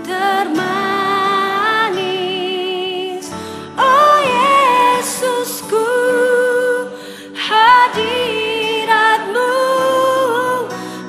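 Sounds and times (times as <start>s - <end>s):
woman singing into a microphone: 0.0s - 11.0s.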